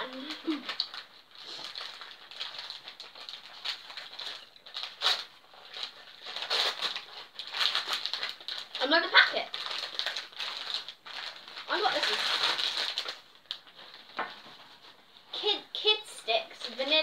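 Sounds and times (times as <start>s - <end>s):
wrapping paper crinkling and tearing: 0.0s - 17.0s.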